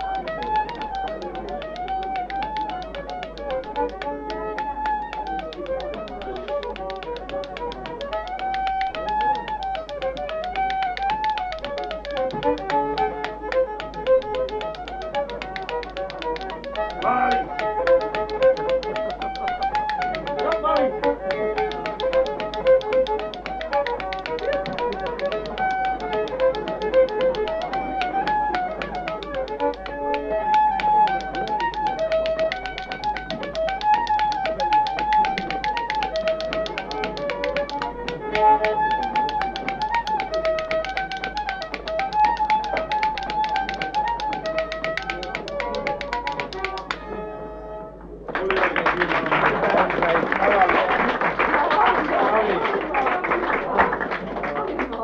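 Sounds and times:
rapid tapping beat: 0:00.0 - 0:47.2, 0:48.4 - 0:55.0
lively folk tune: 0:00.0 - 0:55.0.

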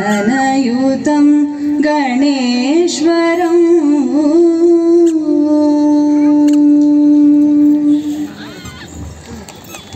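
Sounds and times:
woman singing a long note: 0:00.0 - 0:08.3.

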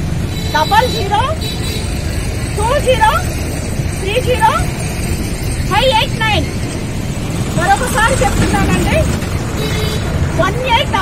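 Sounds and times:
low rumble of street traffic: 0:00.0 - 0:11.0
woman speaking: 0:04.0 - 0:04.7, 0:05.7 - 0:06.5, 0:07.6 - 0:09.2, 0:10.4 - 0:11.0.

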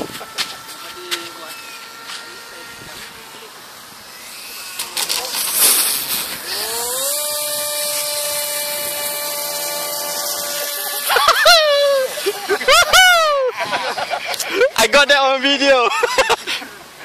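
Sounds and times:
electric model plane motor whine: 0:00.0 - 0:14.7.

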